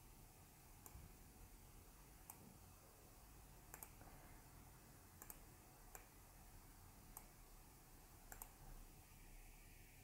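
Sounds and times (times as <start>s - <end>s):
low room hum: 0.0s - 10.0s
computer mouse clicks: 0.8s - 1.1s, 2.2s - 2.6s, 3.7s - 4.1s, 5.2s - 6.2s, 7.1s - 7.4s, 8.3s - 8.6s.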